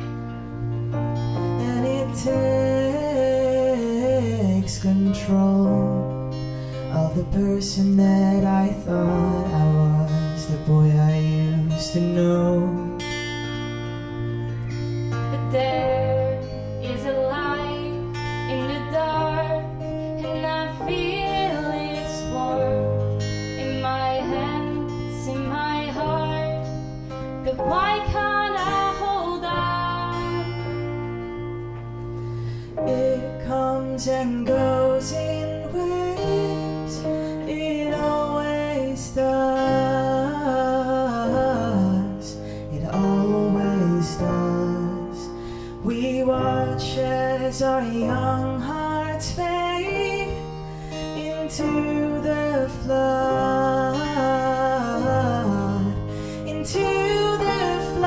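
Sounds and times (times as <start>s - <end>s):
acoustic guitar strummed: 0.0s - 58.0s
woman singing: 15.2s - 31.0s, 32.8s - 41.4s, 45.9s - 58.0s.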